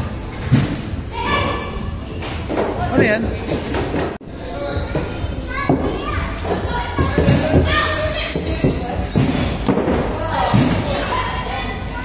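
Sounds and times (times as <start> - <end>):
children chattering echoing: 0.0 - 2.9, 4.3 - 12.0
steady low background hum: 0.0 - 12.0.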